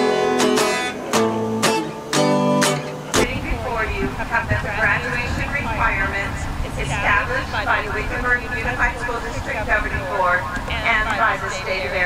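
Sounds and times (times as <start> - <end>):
speech over public address system: 3.1 - 12.0
low rumble: 3.2 - 12.0.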